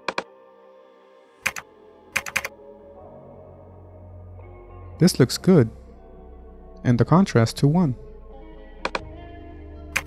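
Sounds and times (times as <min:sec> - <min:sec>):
computer keyboard keystrokes: 0:00.0 - 0:00.3, 0:01.4 - 0:01.6, 0:02.2 - 0:02.5.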